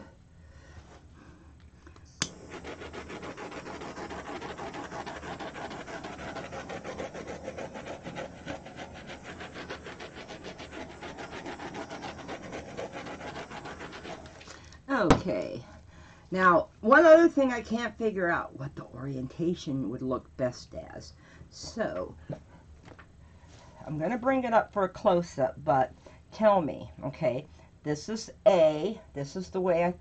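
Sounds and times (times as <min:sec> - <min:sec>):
torch flame hissing: 0:02.2 - 0:14.6.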